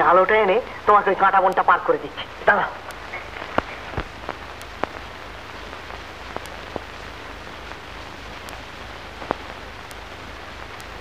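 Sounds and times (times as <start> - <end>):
film soundtrack hiss: 0.0 - 11.0
sharp clicks: 6.3 - 6.9.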